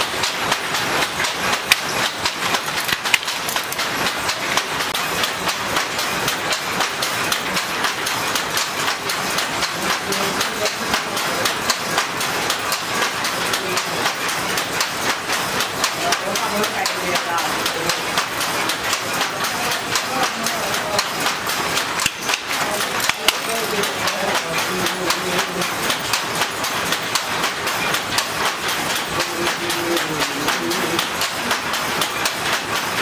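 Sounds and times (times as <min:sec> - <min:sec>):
hand looms clacking: 0:00.0 - 0:33.0.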